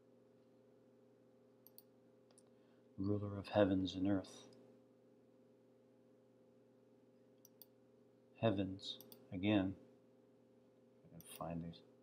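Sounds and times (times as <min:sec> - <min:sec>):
computer mouse clicks: 0:01.6 - 0:02.5, 0:07.4 - 0:07.8, 0:09.0 - 0:09.3.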